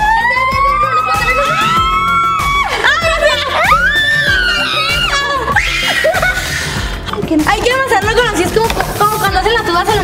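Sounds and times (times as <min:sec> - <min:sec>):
girl screaming: 0:00.0 - 0:06.4
background music: 0:00.0 - 0:10.0.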